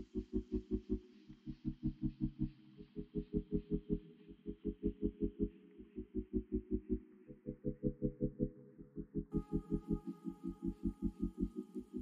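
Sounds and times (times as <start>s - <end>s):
muffled music with bass beat: 0.0s - 12.0s.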